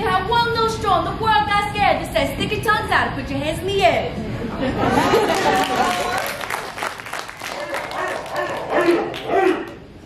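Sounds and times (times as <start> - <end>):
person barking call: 7.6 - 9.7.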